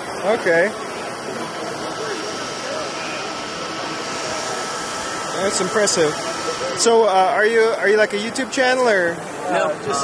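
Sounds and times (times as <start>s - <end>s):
cooling fans rushing air: 0.0s - 10.0s
distant voices: 0.0s - 10.0s
faint steady whine: 0.0s - 10.0s.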